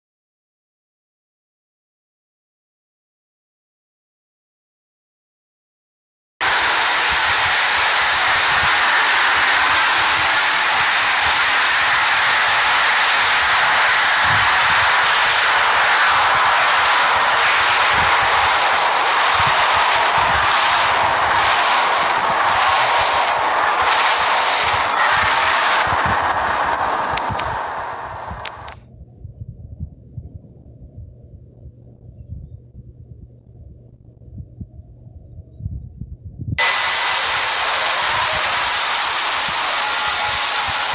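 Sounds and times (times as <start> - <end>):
harsh wall of noise: 6.4 - 28.8, 36.6 - 40.9.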